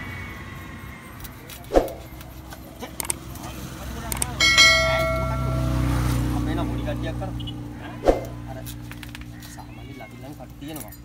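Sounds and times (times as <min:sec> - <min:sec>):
low engine drone: 0:04.2 - 0:07.1
ringing chime: 0:04.4 - 0:06.4.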